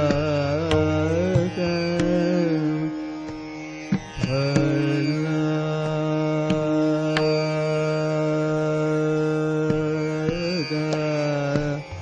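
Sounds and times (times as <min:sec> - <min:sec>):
man singing long note: 0:00.0 - 0:03.1, 0:04.3 - 0:12.0
tabla stroke: 0:00.0 - 0:12.0
tanpura drone: 0:00.0 - 0:12.0.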